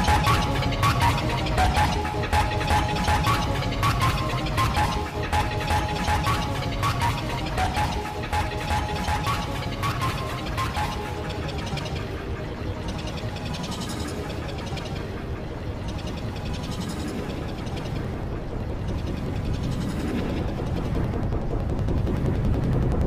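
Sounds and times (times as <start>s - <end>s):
overlapping video soundtracks: 0.0s - 23.0s.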